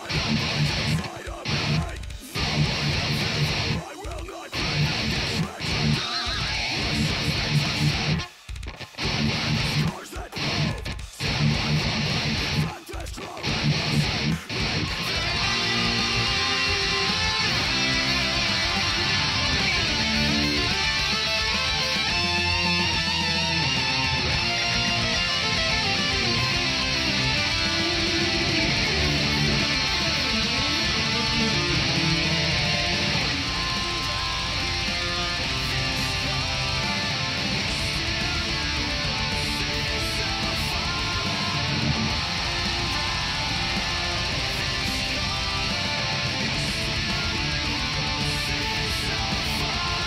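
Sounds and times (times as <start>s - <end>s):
heavy metal electric guitar riffs: 0.0s - 50.0s.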